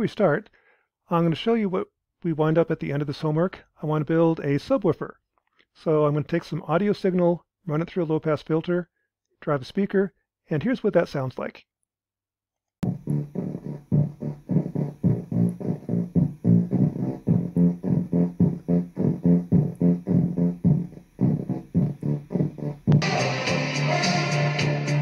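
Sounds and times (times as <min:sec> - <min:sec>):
bass-heavy music through speaker: 0:12.8 - 0:25.0
full-range music: 0:12.8 - 0:25.0.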